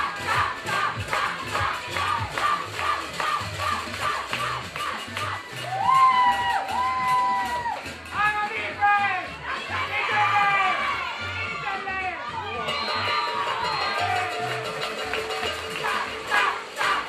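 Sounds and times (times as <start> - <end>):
high voices chanting a cheer: 0.0 - 17.0.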